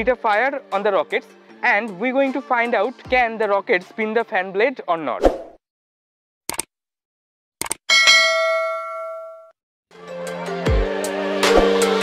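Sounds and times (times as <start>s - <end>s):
music: 0.0s - 5.1s, 9.9s - 12.0s
bell ding: 7.9s - 9.6s.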